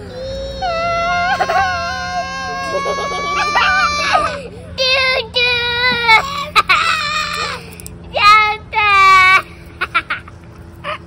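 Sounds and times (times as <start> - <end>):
young children shrieking: 0.0 - 4.8.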